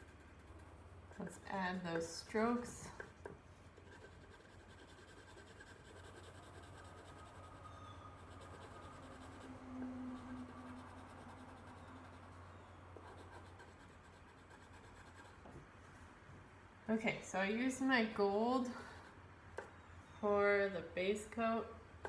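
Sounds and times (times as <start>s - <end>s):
pencil scratching on paper: 0.0s - 7.6s, 8.2s - 12.4s, 13.0s - 15.5s
steady low hum: 0.0s - 22.0s.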